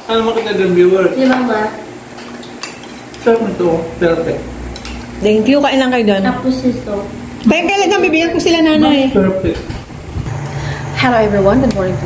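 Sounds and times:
cutlery clinking against a dish: 2.2s - 3.2s.

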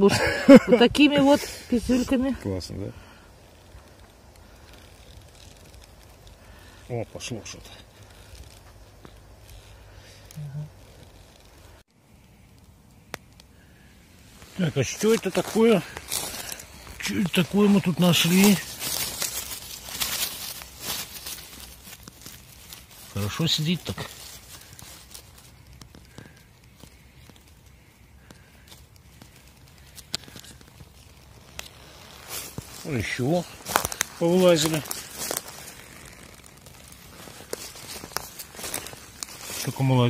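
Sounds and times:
dry leaves and twigs rustling: 0.0s - 40.0s.

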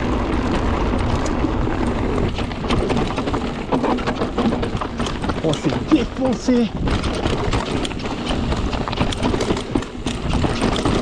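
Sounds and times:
bike clicks and rattles: 0.0s - 11.0s
tyres crackling over gravel: 0.0s - 11.0s.

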